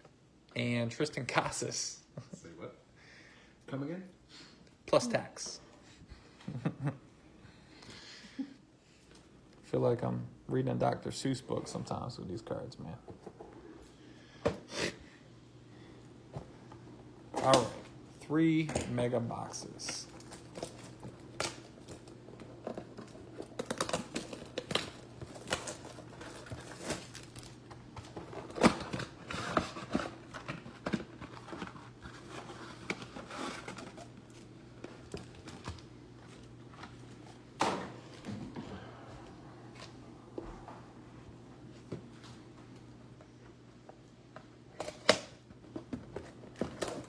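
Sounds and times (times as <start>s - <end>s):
steady low hum: 1.9s - 47.0s
plastic shrink wrap crinkling: 19.8s - 37.1s.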